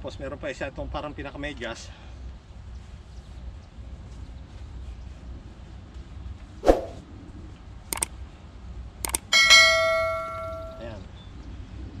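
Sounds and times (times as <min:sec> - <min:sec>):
bright bell ding: 0:09.4 - 0:11.0.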